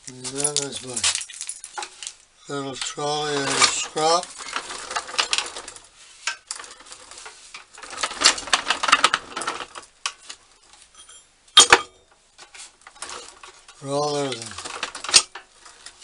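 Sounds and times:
steel plates and wood clattering: 0.0s - 16.0s.

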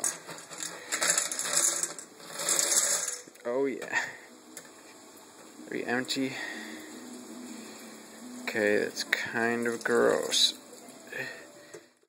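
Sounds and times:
water splashing and trickling: 6.4s - 11.4s.

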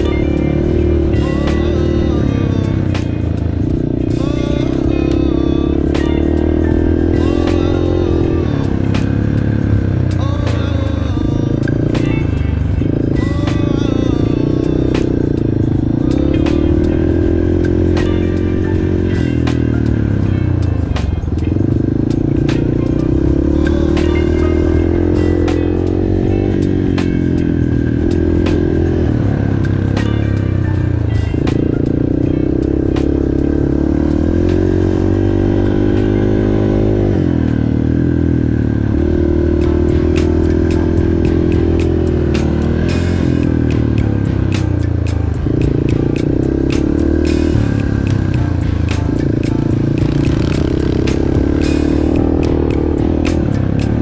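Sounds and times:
dirt bike engine revving: 0.0s - 54.0s.

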